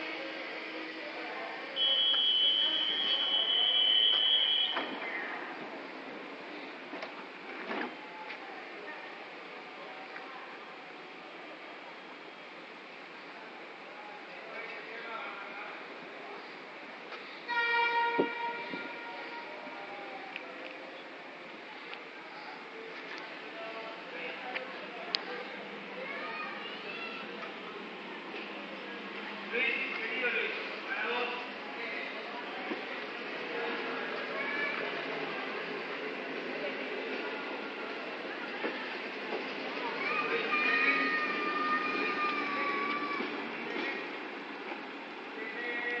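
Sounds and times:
passenger train rumbling: 0.0s - 46.0s
steady background noise: 0.0s - 46.0s
train horn: 17.5s - 19.6s.

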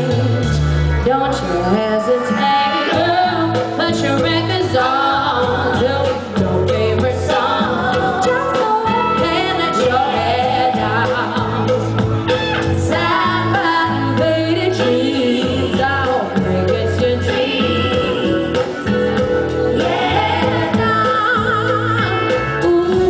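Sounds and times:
steady bass line: 0.0s - 23.0s
woman singing with a band: 0.0s - 23.0s.

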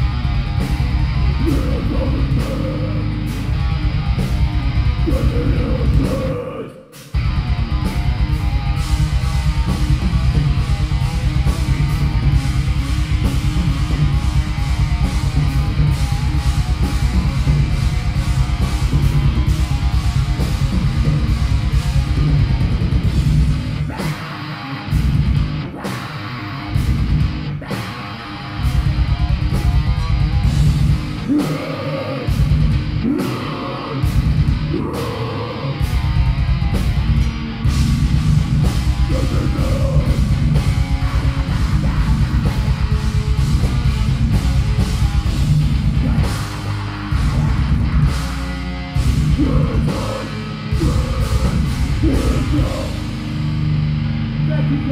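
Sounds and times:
heavy metal band playing: 0.0s - 54.9s.

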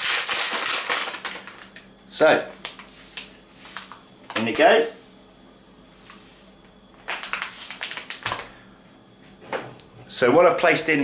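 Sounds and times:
plastic packet crinkling: 0.0s - 1.9s, 7.0s - 8.5s.

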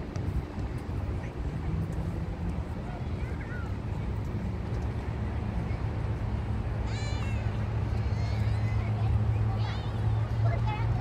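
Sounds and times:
steady low rumble: 0.0s - 11.0s.

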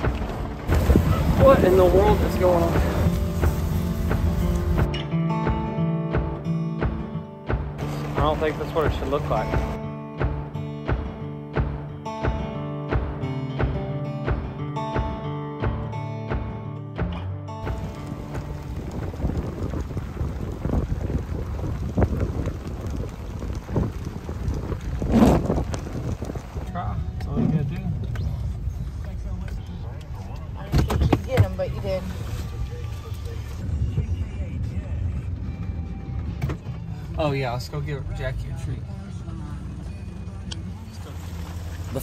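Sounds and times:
truck engine and road rumble: 0.0s - 5.0s, 6.9s - 11.9s, 17.0s - 42.0s.

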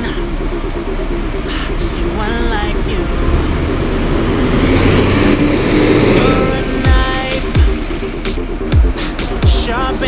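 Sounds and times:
bus engine pulling away: 0.0s - 10.0s.

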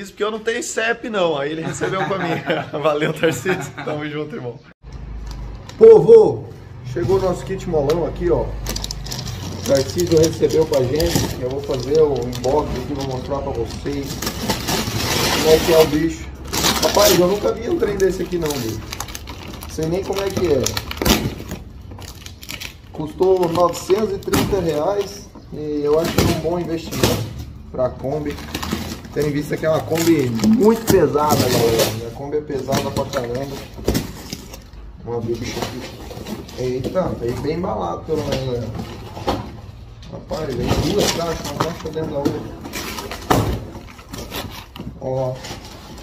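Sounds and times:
paper crackling and rustling: 7.0s - 46.0s
cardboard and paper tearing: 8.4s - 25.1s, 28.1s - 32.1s, 40.6s - 46.0s.

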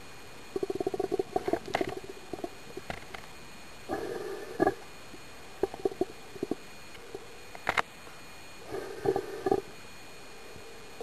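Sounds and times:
faint hiss: 0.0s - 11.0s
underwater gurgling: 0.5s - 3.0s, 5.6s - 6.6s.

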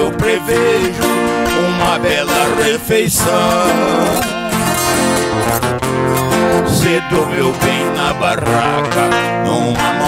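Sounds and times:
person singing: 0.0s - 5.3s, 6.4s - 10.0s
acoustic guitar picking: 0.0s - 10.0s
viola caipira strumming: 0.0s - 10.0s.

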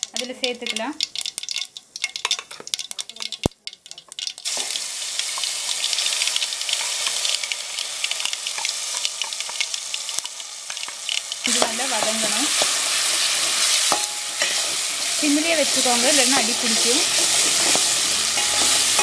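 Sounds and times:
metal tumbler clinking on pot: 0.0s - 4.6s, 15.6s - 19.0s
paste sizzling in hot oil: 0.0s - 19.0s.

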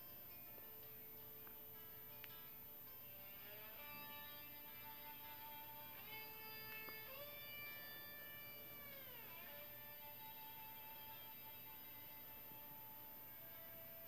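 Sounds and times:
faint guitar ringing notes: 0.0s - 14.0s.

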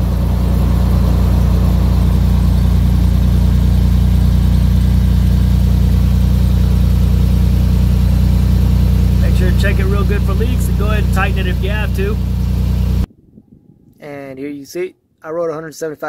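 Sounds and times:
truck engine idling: 0.0s - 13.1s.

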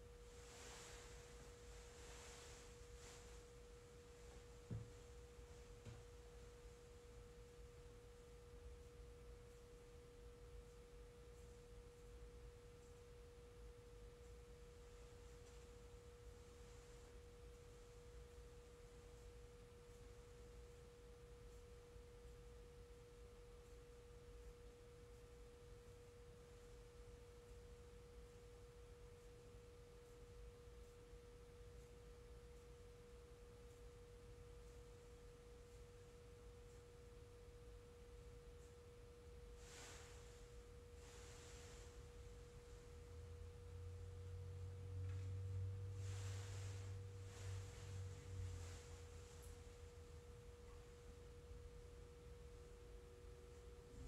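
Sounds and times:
faint steady pure tone: 0.0s - 54.0s.

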